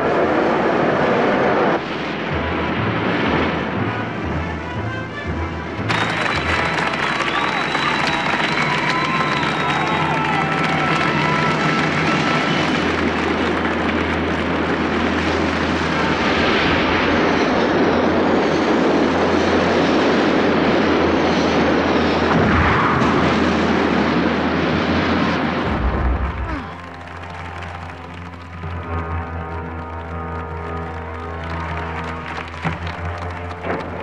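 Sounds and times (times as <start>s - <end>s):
deep rumble: 0.0s - 34.0s
cartoon spacecraft engine: 5.8s - 32.6s
crowd cheering and shouting: 5.9s - 14.5s, 25.7s - 34.0s.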